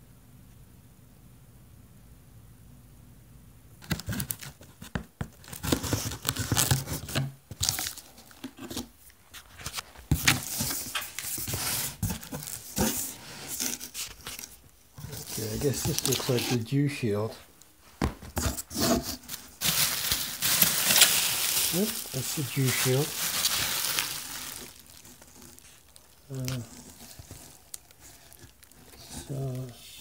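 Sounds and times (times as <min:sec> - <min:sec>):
cardboard flaps crinkling: 0:03.8 - 0:29.8
packing tape ripping: 0:05.4 - 0:08.0, 0:15.2 - 0:16.6, 0:18.8 - 0:29.6.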